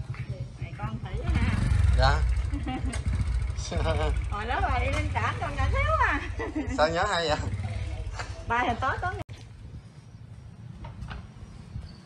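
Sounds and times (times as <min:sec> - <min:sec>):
scooter engine idling: 0:00.0 - 0:09.2
people talking: 0:03.6 - 0:09.2.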